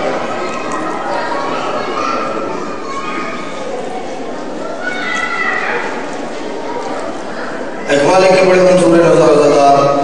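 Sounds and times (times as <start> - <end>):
low indistinct voices: 0.0 - 10.0.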